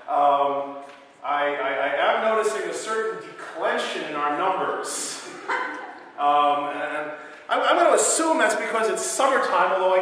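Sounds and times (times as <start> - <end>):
man speaking in drawn-out phrases: 0.0 - 5.3, 6.2 - 10.0.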